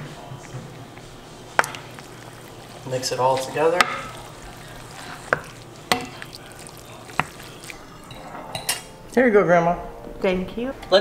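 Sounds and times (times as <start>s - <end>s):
wooden spoon stirring pasta in skillet: 0.8s - 8.5s
spoon knocking against pan: 1.6s - 2.2s.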